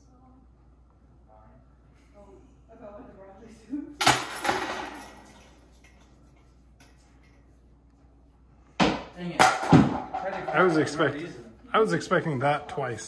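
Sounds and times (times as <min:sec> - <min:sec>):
chains jangling: 0:04.0 - 0:06.0.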